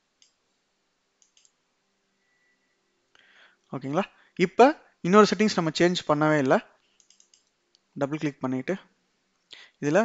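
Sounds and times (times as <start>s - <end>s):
faint mouse clicks: 0.2s - 0.4s, 1.2s - 1.6s, 6.8s - 7.9s.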